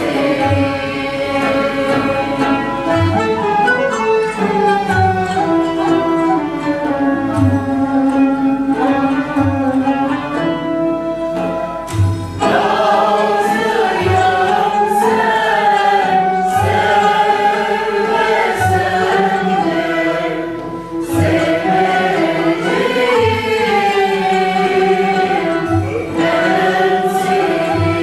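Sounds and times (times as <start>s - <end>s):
mixed choir singing: 0.0s - 3.8s, 12.4s - 28.0s
plucked and bowed instruments: 0.0s - 28.0s.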